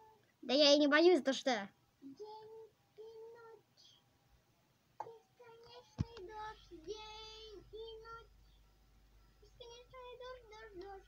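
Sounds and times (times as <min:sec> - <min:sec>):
child singing: 0:00.0 - 0:00.2, 0:02.0 - 0:04.0, 0:05.0 - 0:08.4, 0:09.4 - 0:11.0.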